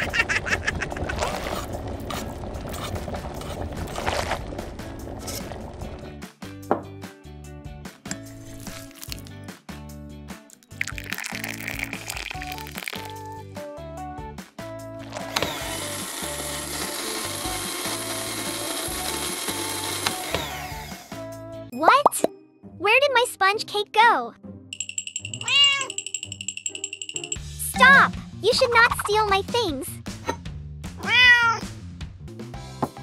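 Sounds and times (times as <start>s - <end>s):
cheerful background music: 4.6s - 33.0s
electric hand mixer running: 15.1s - 21.2s.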